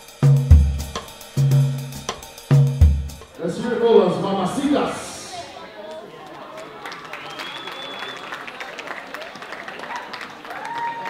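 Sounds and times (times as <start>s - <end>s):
audience clapping: 5.8s - 11.0s
audience shouts and whoops: 6.6s - 11.0s.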